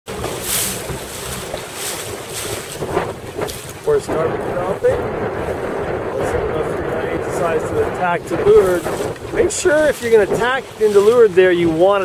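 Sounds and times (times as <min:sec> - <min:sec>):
waves washing: 0:00.0 - 0:12.0
wind buffeting the microphone: 0:00.1 - 0:12.0.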